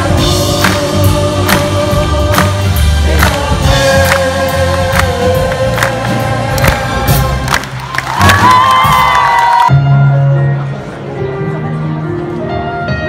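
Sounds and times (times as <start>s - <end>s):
live band with drums and brass: 0.0s - 10.0s.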